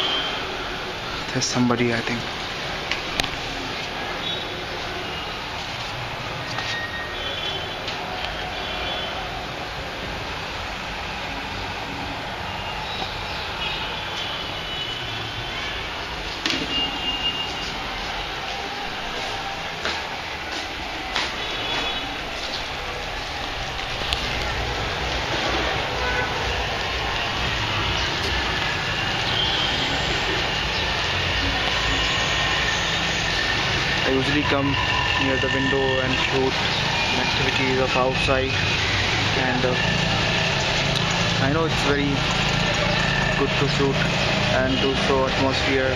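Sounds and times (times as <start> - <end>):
rain: 0.0 - 35.2, 36.4 - 45.1
street noise: 0.0 - 45.9.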